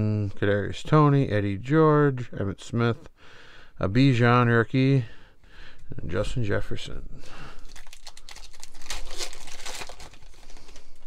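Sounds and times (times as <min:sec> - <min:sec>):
foil wrapper tearing and crinkling: 0:07.3 - 0:11.0.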